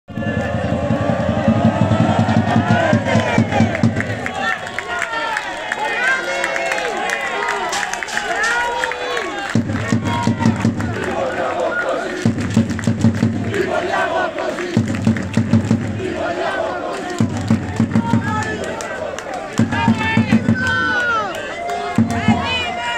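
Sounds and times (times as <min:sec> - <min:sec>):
drum beaten in short runs: 0:00.1 - 0:04.6, 0:09.5 - 0:11.4, 0:12.0 - 0:18.8, 0:19.5 - 0:21.0, 0:21.8 - 0:22.9
people shouting: 0:00.1 - 0:12.2, 0:16.0 - 0:22.9
supporters chanting: 0:00.1 - 0:22.9.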